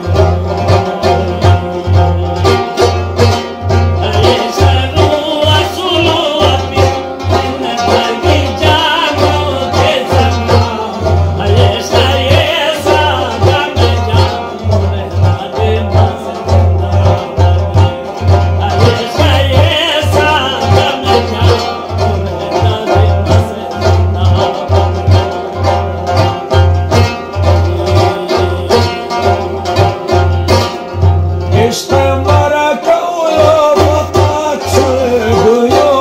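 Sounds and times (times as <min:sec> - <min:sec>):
man singing devotional song: 0:00.0 - 0:02.9, 0:04.0 - 0:30.0, 0:31.5 - 0:36.0
frame drum beat: 0:00.0 - 0:36.0
plucked string instrument: 0:00.0 - 0:36.0.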